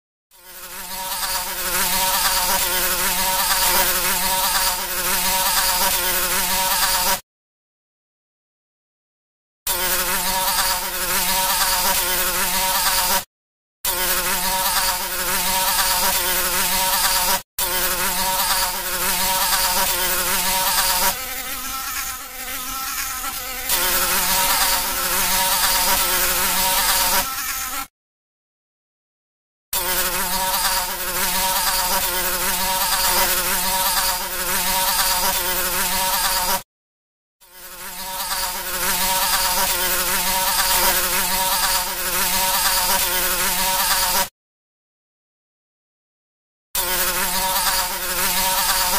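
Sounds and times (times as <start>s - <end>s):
fly buzzing: 0.4s - 7.2s, 9.7s - 13.3s, 13.9s - 27.9s, 29.8s - 36.7s, 37.4s - 44.3s, 46.8s - 48.9s.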